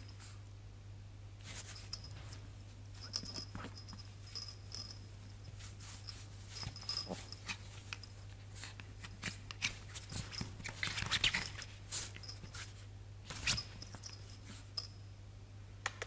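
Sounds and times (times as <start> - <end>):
steady low hum: 0.0 - 16.0
dog scratching fabric: 5.6 - 14.1.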